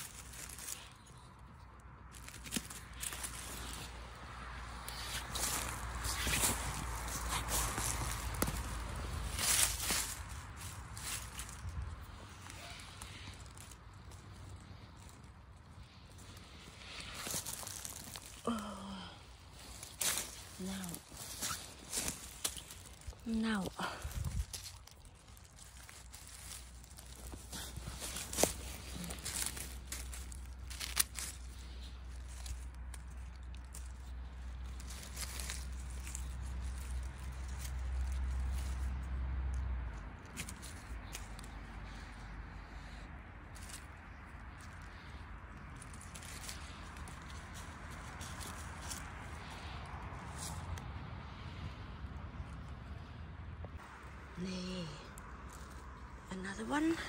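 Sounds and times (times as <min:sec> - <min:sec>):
rustling of dry pine needles: 0:00.0 - 0:57.0
low rumble: 0:00.1 - 0:32.5.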